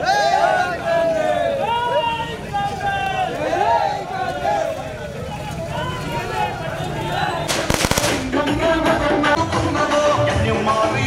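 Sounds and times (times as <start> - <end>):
music with singing: 7.1 - 11.0
firecrackers cracking: 7.5 - 9.0.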